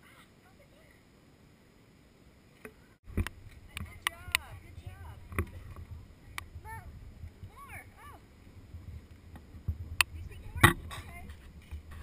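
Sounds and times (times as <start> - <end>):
sharp clicks: 3.1 - 4.5
low rumble: 3.1 - 12.0.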